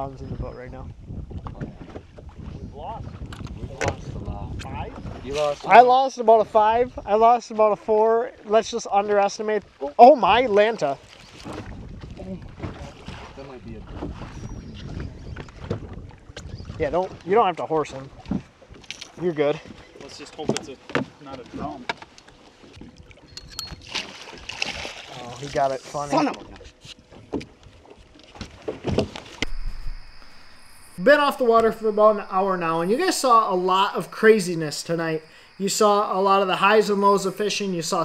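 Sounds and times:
wind on microphone: 0:00.0 - 0:05.7, 0:11.4 - 0:17.3, 0:28.9 - 0:38.0
waves lapping against boat: 0:10.6 - 0:38.0
water splashing: 0:29.0 - 0:38.0
crickets trilling: 0:29.4 - 0:38.0
low hum: 0:29.4 - 0:38.0.

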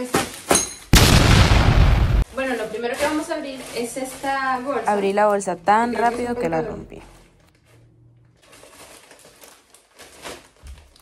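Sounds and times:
plastic bag crinkling: 0:02.5 - 0:05.4, 0:08.4 - 0:11.0.

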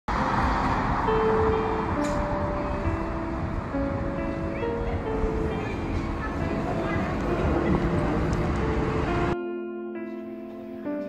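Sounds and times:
street traffic noise: 0:00.1 - 0:09.4
slow background music: 0:00.1 - 0:11.0.

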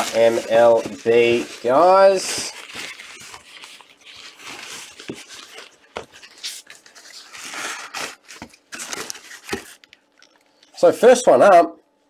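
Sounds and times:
nylon bag rustling: 0:00.0 - 0:09.8.

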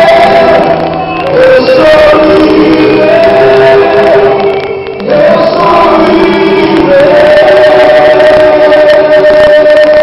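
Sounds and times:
crowd singing worship song: 0:00.0 - 0:10.0.

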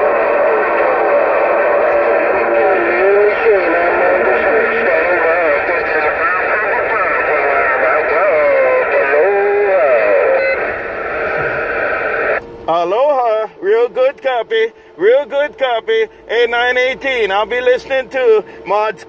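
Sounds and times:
garbled radio voices: 0:00.0 - 0:19.0.

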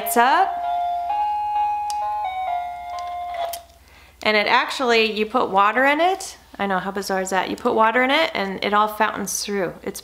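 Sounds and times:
music box playing a tune: 0:00.5 - 0:03.6.

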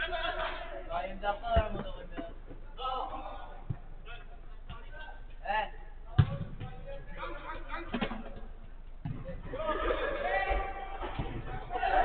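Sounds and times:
football being struck: 0:01.6 - 0:02.6, 0:06.1 - 0:06.9, 0:09.0 - 0:09.6.

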